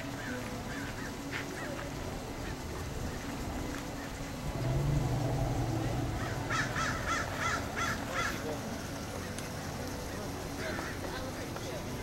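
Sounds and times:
low steady hum: 0:00.0 - 0:10.6
bird calling: 0:04.0 - 0:08.5.

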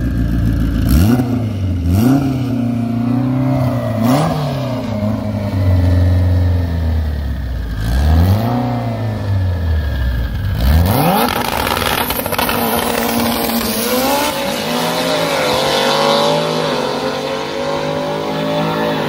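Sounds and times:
car engine idling and revving: 0:00.0 - 0:19.0.

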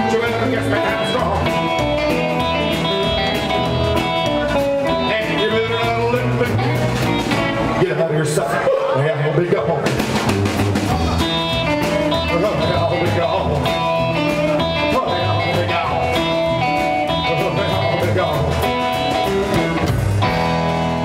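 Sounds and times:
rock and roll band playing: 0:00.0 - 0:21.0.

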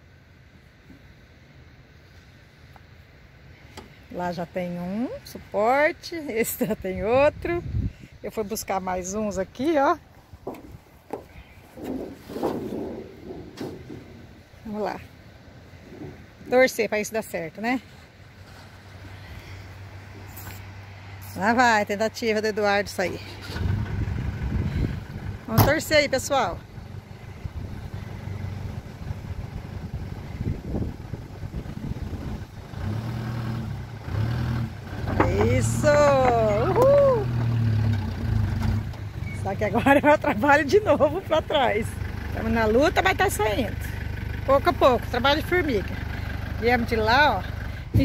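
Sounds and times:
van engine running under load: 0:09.0 - 0:16.6, 0:17.4 - 0:48.0
sheet metal scraping on sand: 0:11.4 - 0:14.4.

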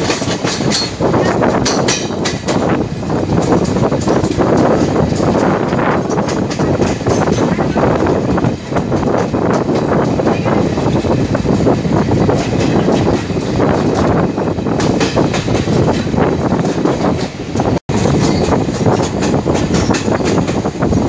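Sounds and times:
train wheels clattering on rails: 0:00.0 - 0:21.0.

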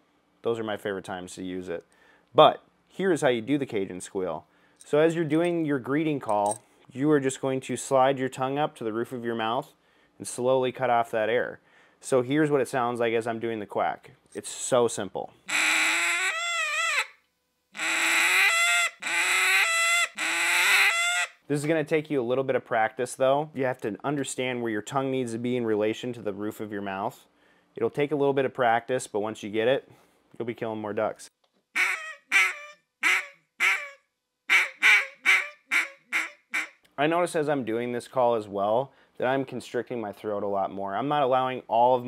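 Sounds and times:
duck call quack breaking into squeal: 0:15.5 - 0:17.2, 0:17.8 - 0:21.4, 0:31.8 - 0:36.8.

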